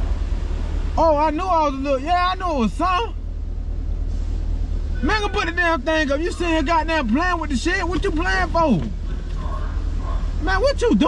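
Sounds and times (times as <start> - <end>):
low rumble in car cabin: 0.0 - 11.0.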